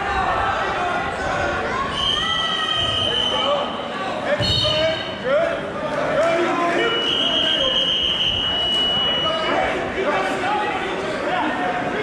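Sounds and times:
voices in a gym: 0:00.0 - 0:12.0.

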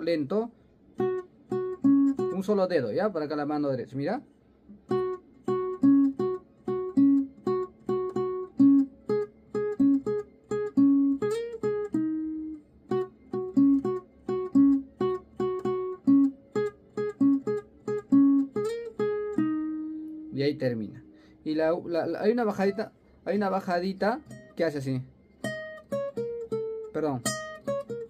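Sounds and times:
acoustic guitar melody: 0:00.0 - 0:03.9, 0:04.6 - 0:28.0.

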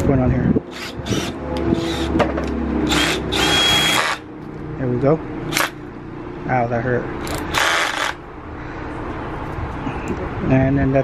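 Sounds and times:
cordless drill spinning: 0:00.7 - 0:02.1, 0:02.9 - 0:04.2
drill clicks: 0:00.7 - 0:02.1, 0:02.9 - 0:04.2, 0:07.2 - 0:08.2.

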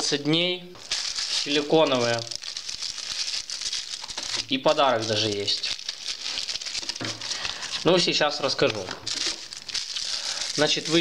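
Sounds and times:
plastic bags crinkling: 0:00.8 - 0:11.0.

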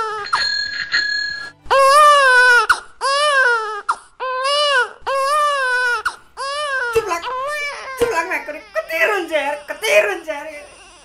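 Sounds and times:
newborn baby crying: 0:01.6 - 0:11.0.

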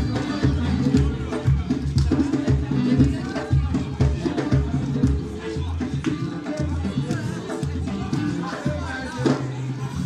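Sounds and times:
hand percussion: 0:00.0 - 0:10.0.

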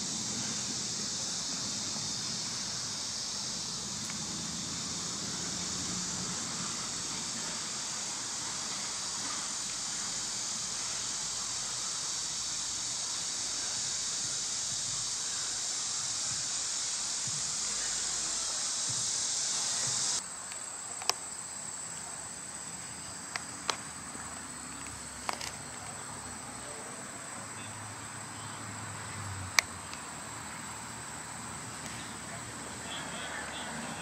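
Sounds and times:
chorus of insects: 0:00.0 - 0:34.0
sharp clicks: 0:24.8 - 0:26.0.

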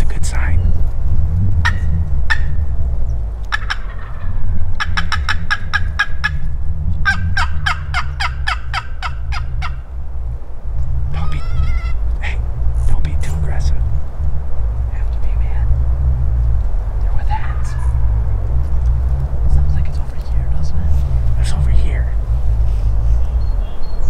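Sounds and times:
steady low rumble: 0:00.0 - 0:24.0
wild turkeys calling: 0:01.5 - 0:10.0, 0:11.0 - 0:15.2, 0:16.5 - 0:19.2.

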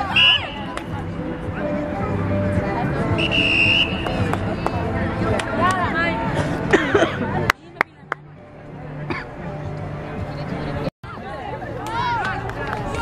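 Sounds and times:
referee's whistle blast: 0:03.2 - 0:04.0.

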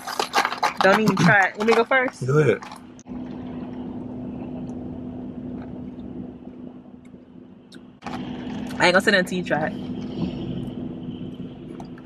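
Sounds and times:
low car cabin hum: 0:00.0 - 0:12.0
road rushing noise: 0:00.0 - 0:12.0.

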